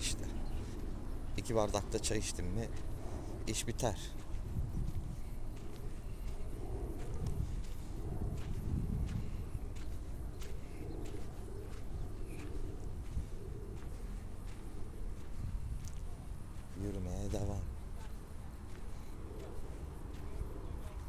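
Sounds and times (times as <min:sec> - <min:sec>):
footsteps on sand: 0:00.0 - 0:21.0
low microphone rumble: 0:00.0 - 0:21.0.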